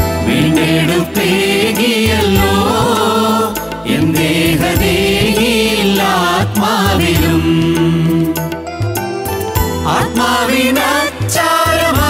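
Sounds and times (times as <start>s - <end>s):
men singing a hymn: 0.0s - 8.6s, 9.8s - 12.0s
instrumental accompaniment with beat: 0.0s - 12.0s.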